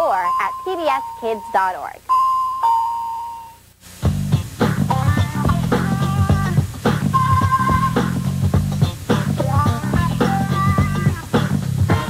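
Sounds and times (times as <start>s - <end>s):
two-note electronic chime: 0.0s - 3.6s.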